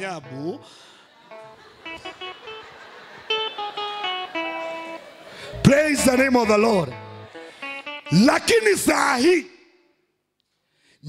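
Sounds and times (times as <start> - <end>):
man speaking into a microphone: 5.6 - 7.0, 8.1 - 9.6.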